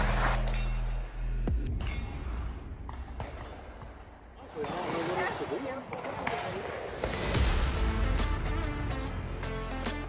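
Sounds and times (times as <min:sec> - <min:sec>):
people talking: 0:04.4 - 0:06.8.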